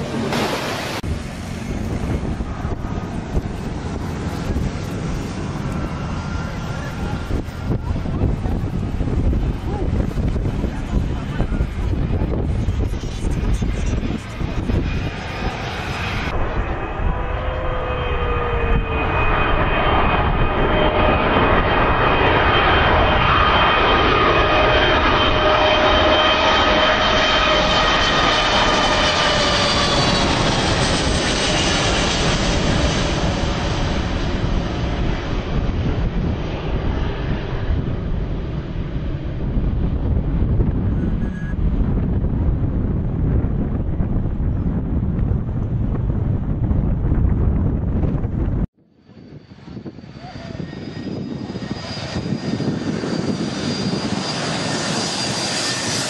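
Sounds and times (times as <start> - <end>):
jet engine whine: 0.0 - 56.0
low rumble: 0.0 - 56.0.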